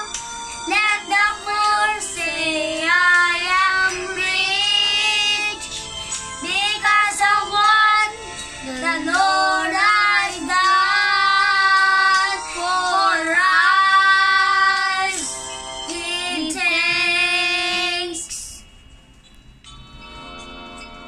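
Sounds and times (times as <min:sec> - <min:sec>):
boys singing together: 0:08.8 - 0:15.3.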